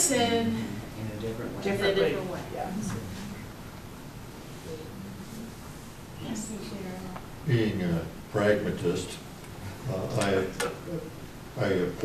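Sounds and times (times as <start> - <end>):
faint low murmurs: 0.0 - 12.0
steady low hiss: 0.0 - 12.0.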